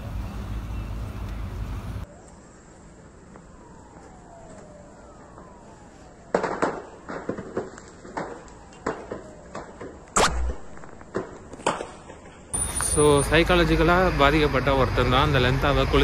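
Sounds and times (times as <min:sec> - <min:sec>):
rumbling outdoor roar: 0:12.6 - 0:16.0.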